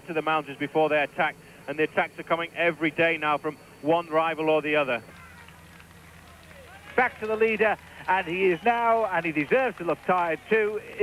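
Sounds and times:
faint distant voices: 0:00.0 - 0:11.0
steady low hum: 0:00.0 - 0:11.0.

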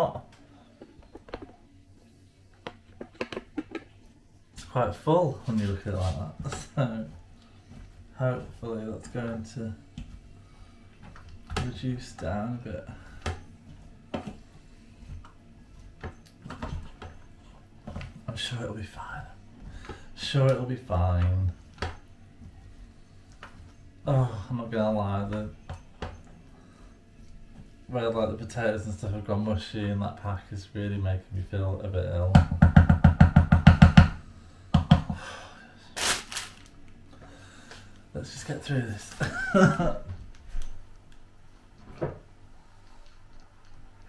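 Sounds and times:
kitchen items knocking and clicking: 0:02.7 - 0:04.0.

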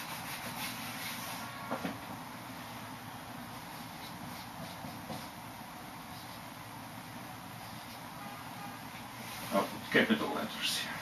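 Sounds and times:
marker scratching on whiteboard: 0:00.0 - 0:01.6, 0:03.6 - 0:05.4.

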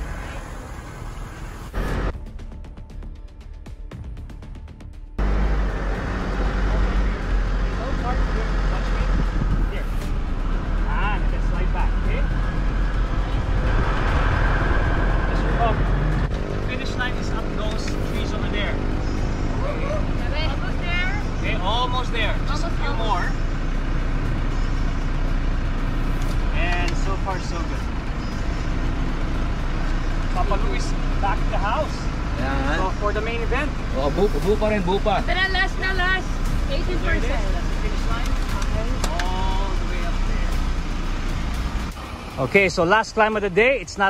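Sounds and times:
car engine and road noise: 0:00.0 - 0:44.0.

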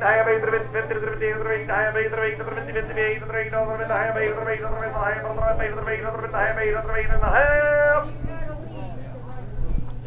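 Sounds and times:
auctioneer chanting rapidly: 0:00.0 - 0:08.2
steady low hum: 0:00.0 - 0:10.0.

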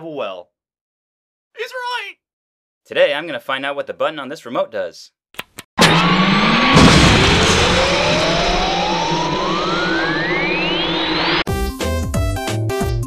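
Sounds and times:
cartoon crash: 0:05.8 - 0:11.4
cartoon launch rumble and whistle: 0:05.8 - 0:11.5.

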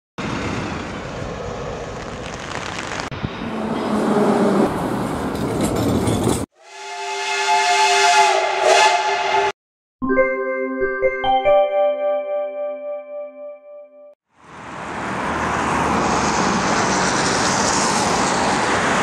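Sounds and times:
bus driving past: 0:00.2 - 0:06.4, 0:14.4 - 0:19.0
street traffic: 0:00.2 - 0:06.5, 0:14.3 - 0:19.0
tram wheels squealing: 0:01.2 - 0:06.5, 0:15.6 - 0:19.0.

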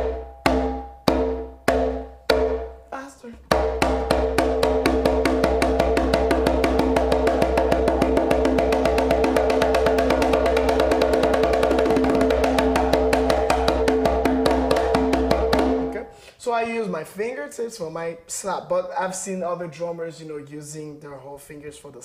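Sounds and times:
open slaps on a conga: 0:03.4 - 0:15.9.

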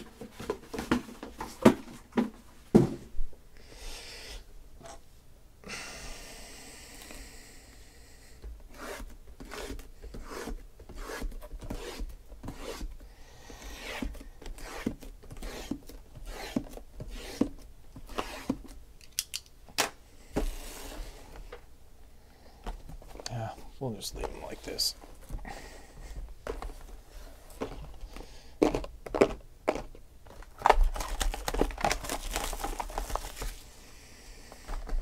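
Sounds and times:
plastic wrap crinkling: 0:28.6 - 0:33.7.

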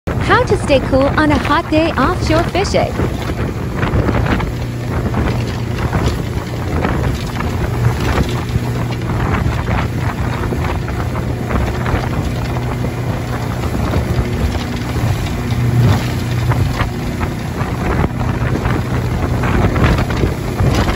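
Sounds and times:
hull slapping waves: 0:00.1 - 0:20.9
motorboat engine drone: 0:00.1 - 0:20.9
water splashing: 0:00.1 - 0:20.9
wind buffeting microphone: 0:00.1 - 0:20.9.

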